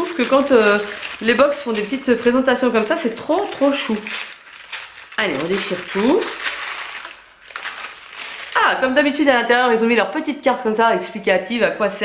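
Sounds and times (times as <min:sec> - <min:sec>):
packaging tearing: 0:00.0 - 0:08.7.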